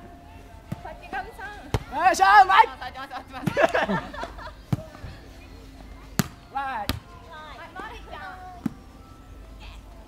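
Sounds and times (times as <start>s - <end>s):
volleyball being hit: 6.2s - 7.1s.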